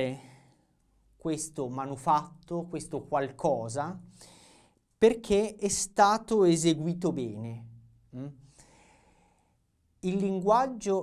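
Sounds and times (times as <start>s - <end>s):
soft breath in: 4.1s - 4.8s, 8.4s - 9.7s
man's questioning mm: 8.2s - 8.4s.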